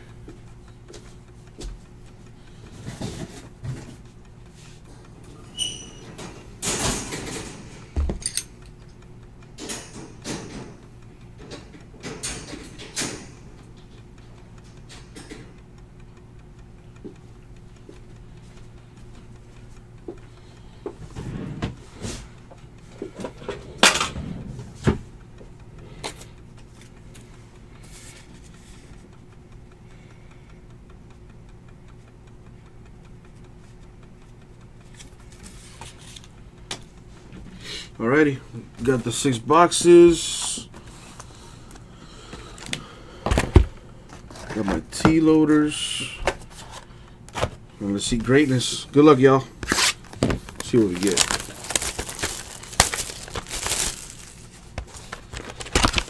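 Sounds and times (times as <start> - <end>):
low electrical hum: 0.0 - 56.0.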